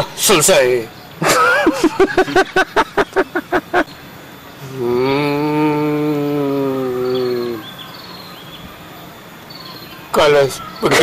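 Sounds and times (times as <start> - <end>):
faint birds chirping: 0.0 - 11.0
man chanting one long tone: 4.7 - 7.7.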